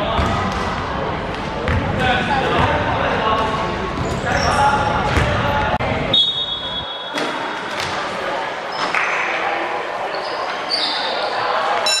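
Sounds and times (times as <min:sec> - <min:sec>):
voices chattering and calling: 0:02.2 - 0:12.0.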